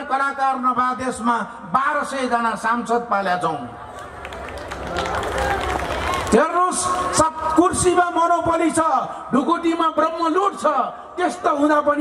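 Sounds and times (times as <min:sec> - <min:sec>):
audience clapping: 0:03.9 - 0:07.1.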